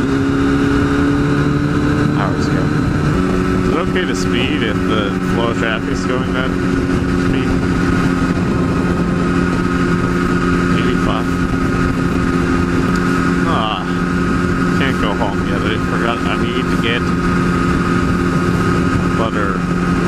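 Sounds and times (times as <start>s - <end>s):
motorcycle engine cruising: 0.0s - 20.0s
wind and road noise: 0.0s - 20.0s.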